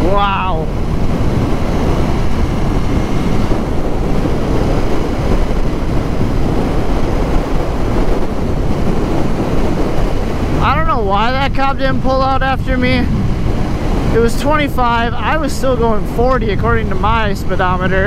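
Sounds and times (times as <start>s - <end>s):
motorcycle engine: 0.0s - 17.1s
road noise: 0.0s - 18.0s
wind roar on microphone: 0.0s - 18.0s.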